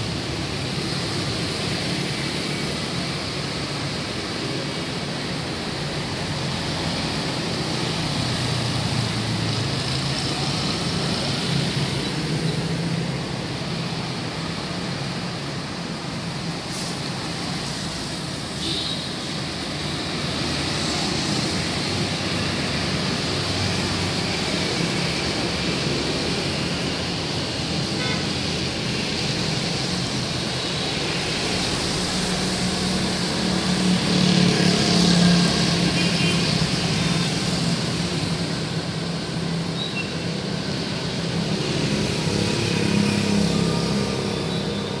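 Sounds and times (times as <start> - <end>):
traffic on a wet road: 0.0 - 45.0.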